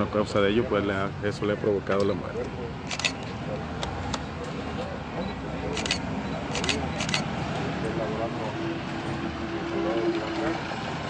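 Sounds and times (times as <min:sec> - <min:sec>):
faint background voices: 0:00.0 - 0:11.0
vehicle hum: 0:02.2 - 0:11.0.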